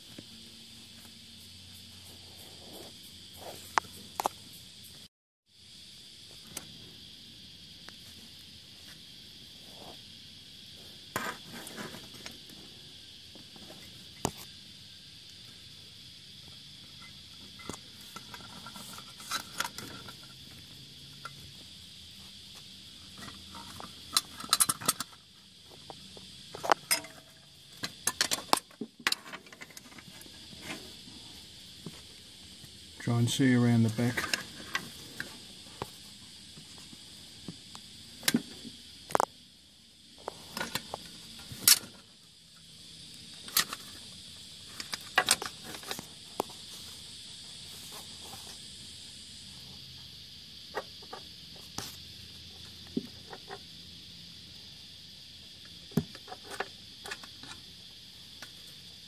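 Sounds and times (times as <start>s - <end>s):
high-pitched insect chorus: 0.0s - 59.0s.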